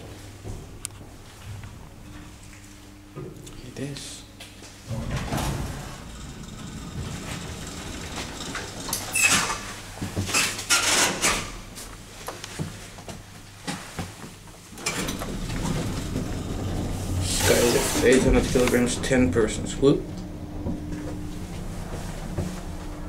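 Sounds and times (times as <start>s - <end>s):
steady mechanical noise: 0.0s - 23.0s
elevator doors sliding: 4.7s - 12.2s, 14.6s - 23.0s.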